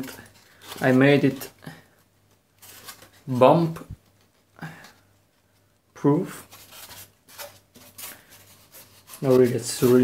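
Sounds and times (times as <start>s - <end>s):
hands rubbing styrofoam: 6.6s - 10.0s.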